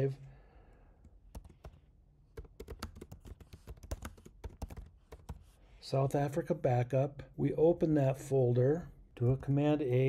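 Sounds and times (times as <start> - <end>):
typing on computer keyboard: 1.3 - 1.8, 2.4 - 5.4.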